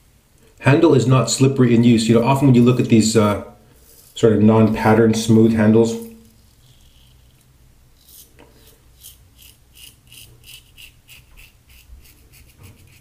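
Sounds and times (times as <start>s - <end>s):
razor scraping stubble: 6.0s - 13.0s.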